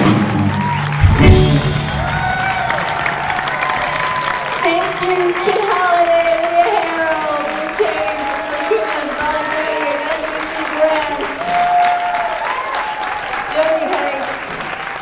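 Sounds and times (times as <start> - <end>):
audience applauding: 0.0 - 15.0.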